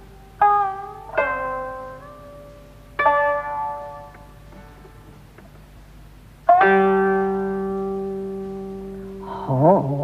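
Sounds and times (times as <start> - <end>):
plucked string note ringing: 0.0 - 5.4, 6.4 - 10.0.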